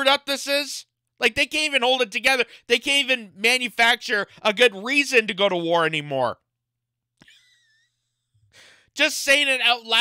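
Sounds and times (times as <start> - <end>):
man breathing in: 8.3 - 9.0.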